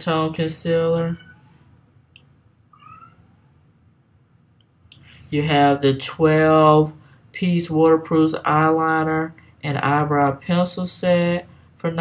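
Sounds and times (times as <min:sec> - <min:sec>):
faint high-pitched mewing cry: 0:01.2 - 0:01.6, 0:02.7 - 0:03.6.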